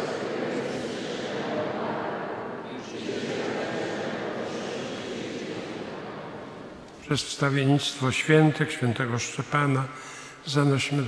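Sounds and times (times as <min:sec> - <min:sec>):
congregation murmuring in church: 0:00.0 - 0:11.0.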